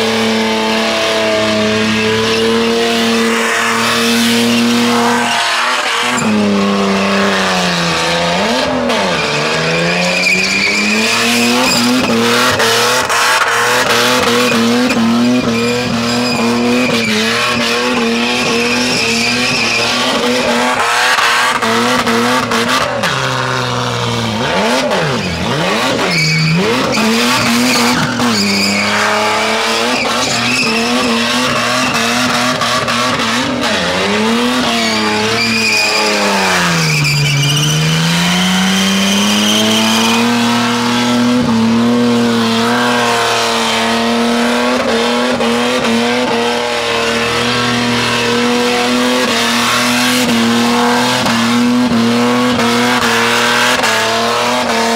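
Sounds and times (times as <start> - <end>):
car engine revving high: 0.0 - 54.9
tyres spinning and squealing: 0.1 - 54.9.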